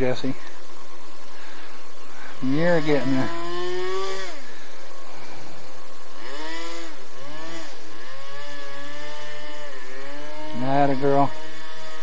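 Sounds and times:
model airboat motor and propeller: 0:02.4 - 0:12.0.

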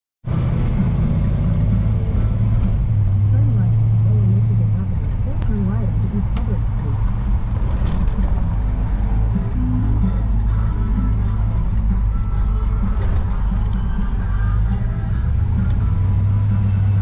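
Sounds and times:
car engine droning inside cabin: 0:00.3 - 0:17.0.

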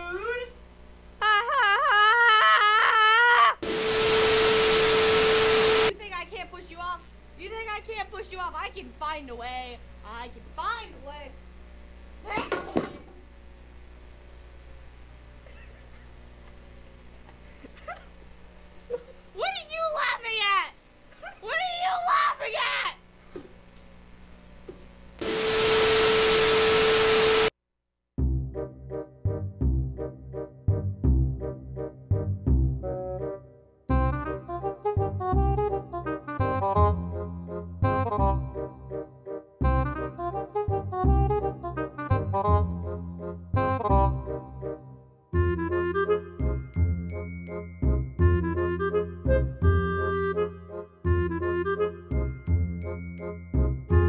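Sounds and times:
static hiss with steady tone: 0:00.0 - 0:27.6
child wailing: 0:01.2 - 0:03.6.

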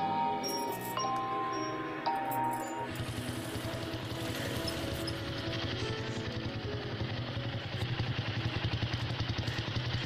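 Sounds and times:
motorcycle engine running: 0:01.5 - 0:10.0.

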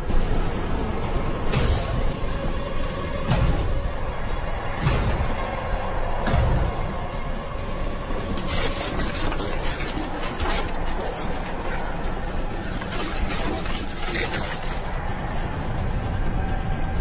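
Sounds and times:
horror film music: 0:00.0 - 0:17.0.

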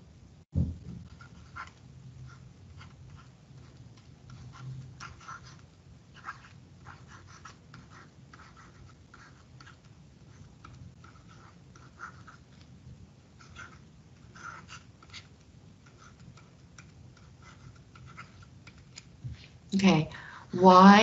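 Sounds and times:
low steady hum: 0:00.0 - 0:21.0
loud thump: 0:00.5 - 0:01.0
stylus scratching on a tablet: 0:00.9 - 0:19.4.

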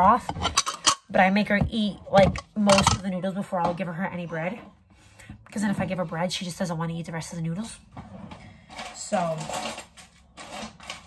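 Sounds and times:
rustling and clatter on counter: 0:00.0 - 0:03.0, 0:07.9 - 0:11.0.

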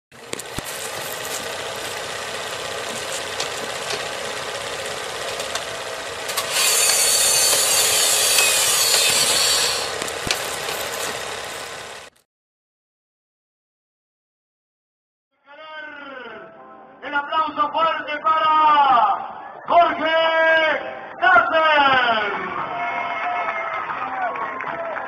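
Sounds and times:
mechanical whirring: 0:00.2 - 0:12.1
clicks and crackles: 0:09.9 - 0:11.3.

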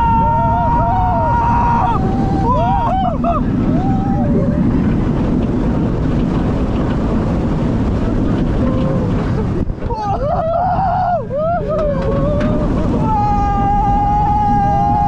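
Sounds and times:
roller coaster rumbling on track: 0:00.0 - 0:15.0
wind over microphone: 0:00.0 - 0:15.0.

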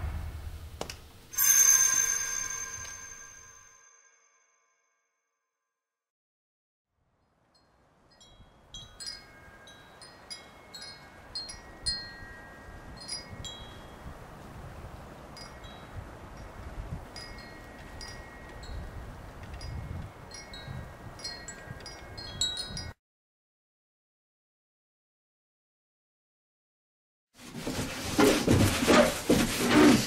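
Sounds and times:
wind chimes tinkling: 0:01.3 - 0:04.8, 0:07.6 - 0:14.3, 0:15.3 - 0:23.0
wind rumble on microphone: 0:11.2 - 0:23.0.

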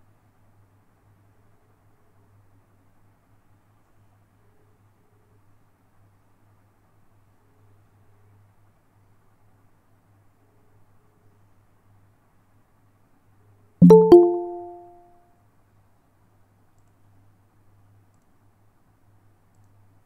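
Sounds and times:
two-note bell chime: 0:13.8 - 0:15.0.

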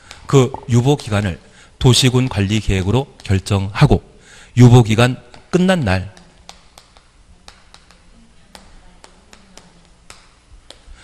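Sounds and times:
low room hum: 0:00.0 - 0:11.0
chalk tapping on chalkboard: 0:06.1 - 0:11.0.

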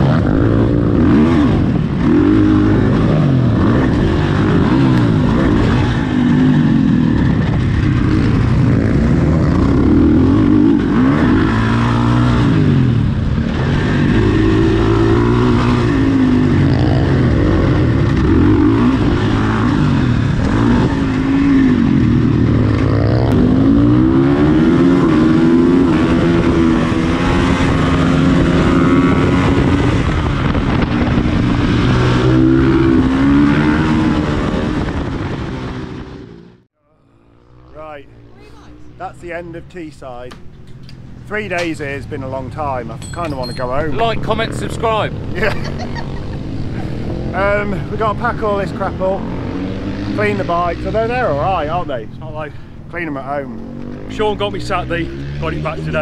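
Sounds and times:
motorcycle engine accelerating: 0:00.0 - 0:56.0.

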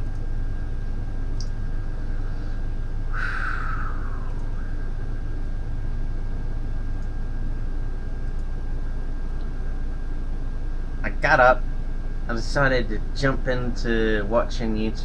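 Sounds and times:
low room hum: 0:00.0 - 0:15.0
short falling rush: 0:03.1 - 0:04.8.

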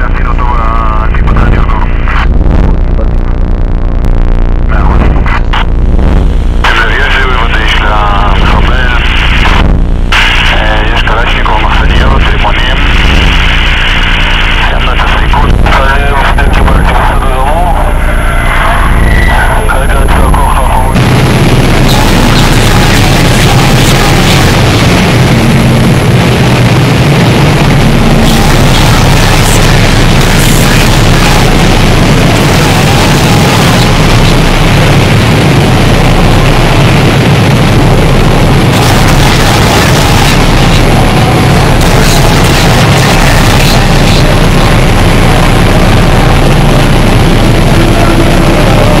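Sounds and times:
distorted harsh noise: 0:00.0 - 0:49.0
distorted voice: 0:00.0 - 0:49.0
heavy low drone: 0:00.0 - 0:49.0
heavy low rumble: 0:00.0 - 0:49.0
thin high whine: 0:00.0 - 0:49.0.

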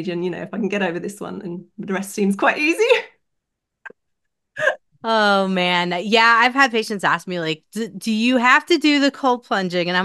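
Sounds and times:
woman laughing: 0:04.6 - 0:04.8.

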